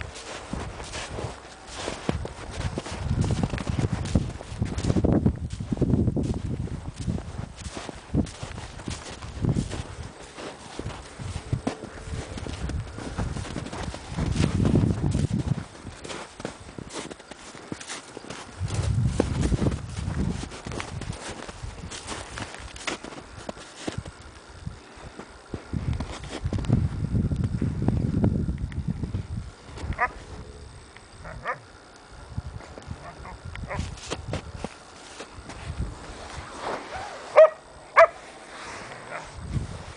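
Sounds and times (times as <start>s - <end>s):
hooves crunching in snow: 0.0s - 28.2s, 28.8s - 39.9s.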